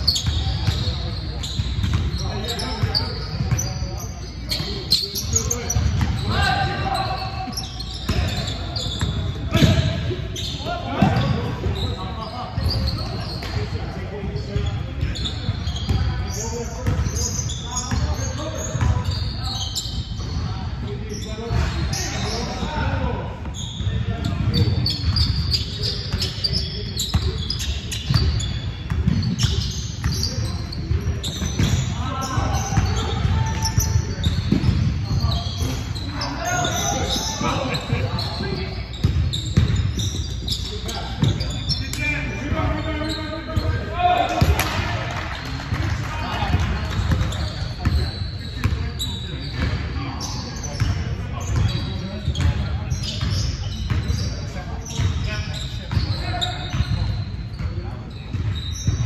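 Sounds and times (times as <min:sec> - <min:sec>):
players calling and shouting: 0:00.0 - 0:59.0
ball bouncing on hardwood court: 0:00.2 - 0:03.7, 0:08.1 - 0:10.0, 0:28.0 - 0:35.8, 0:36.6 - 0:40.4, 0:43.6 - 0:48.0.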